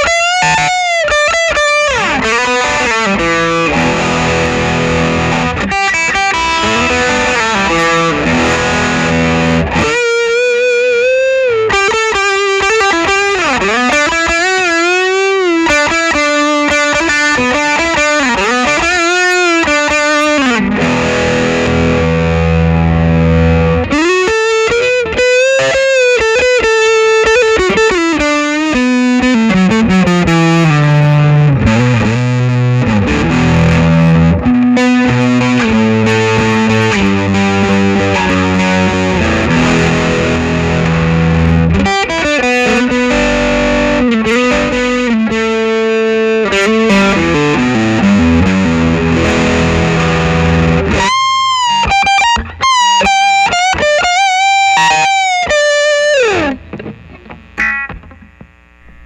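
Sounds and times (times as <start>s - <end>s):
overdriven electric guitar lead: 0.0s - 59.0s.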